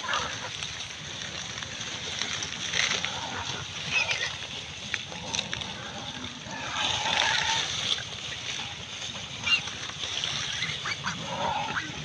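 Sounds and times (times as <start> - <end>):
plants rustling and splashing: 0.0 - 12.0.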